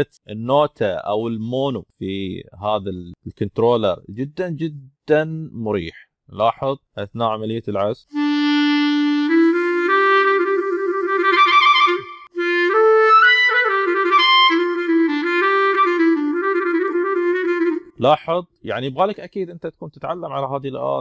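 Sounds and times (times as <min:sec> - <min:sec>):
legato clarinet melody: 0:08.1 - 0:18.0.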